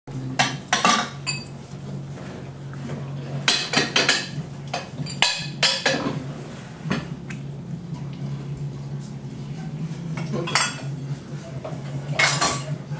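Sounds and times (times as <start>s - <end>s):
ceramic dishes clinking: 0.5s - 1.6s, 10.2s - 11.0s, 12.2s - 12.8s.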